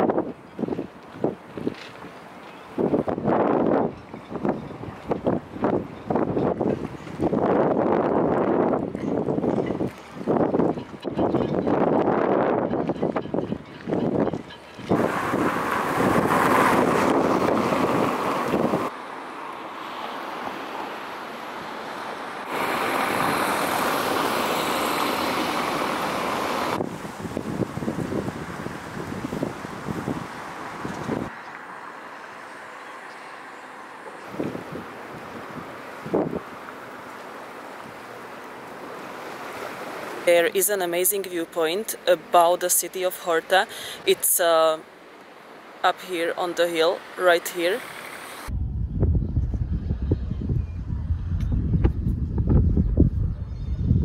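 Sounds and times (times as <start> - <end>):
wind on microphone: 0.0 - 2.0, 2.8 - 18.9, 26.2 - 31.3, 34.2 - 36.6, 48.3 - 54.0
cars passing: 0.2 - 48.6
sea water lapping: 43.4 - 45.8.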